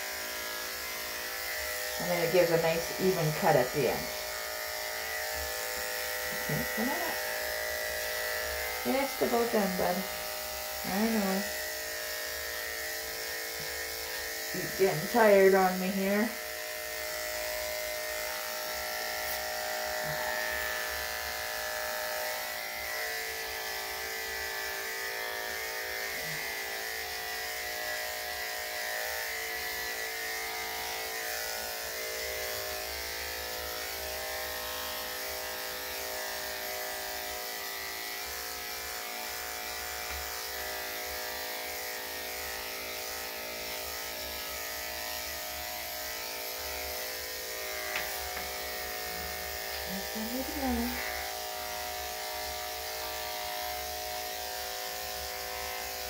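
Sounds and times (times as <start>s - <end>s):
electric clippers buzzing: 0.0s - 56.0s.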